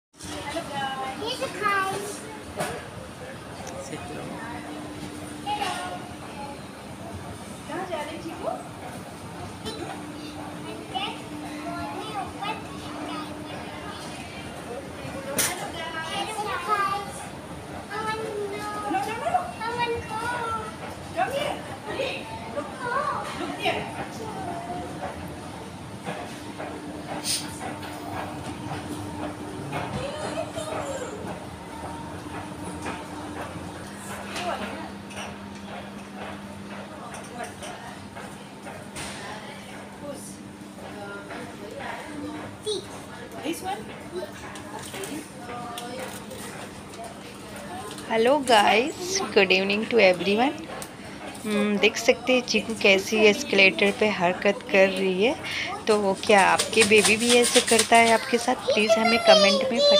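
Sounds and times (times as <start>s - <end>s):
faint voices: 0.2s - 59.9s
moving walkway humming: 0.2s - 59.9s
steady background noise: 0.2s - 59.9s
child's high-pitched chatter: 30.0s - 31.3s, 42.3s - 43.0s, 57.8s - 59.9s
other voices: 47.3s - 59.9s.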